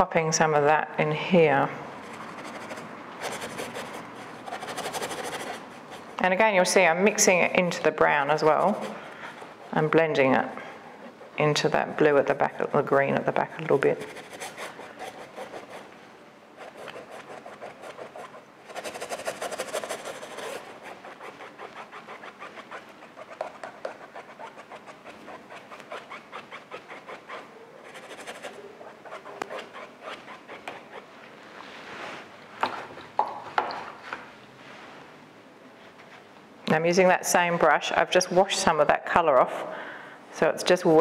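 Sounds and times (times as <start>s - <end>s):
paintbrush scrubbing on canvas: 16.6s - 32.3s.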